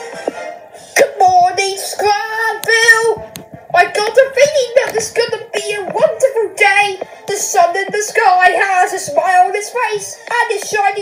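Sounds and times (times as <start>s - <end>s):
child singing: 1.0s - 11.0s.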